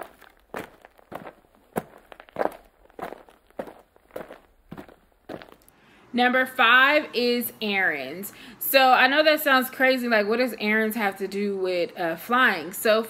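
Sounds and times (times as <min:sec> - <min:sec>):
footsteps walking: 0:00.0 - 0:05.8.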